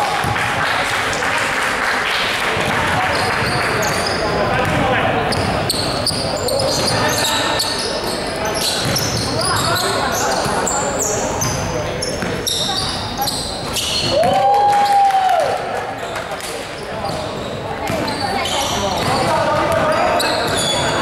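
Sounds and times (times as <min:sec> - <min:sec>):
players' voices: 0:00.0 - 0:21.0
sneakers squeaking on court: 0:03.0 - 0:14.2, 0:16.0 - 0:21.0
basketball bouncing: 0:08.8 - 0:09.7.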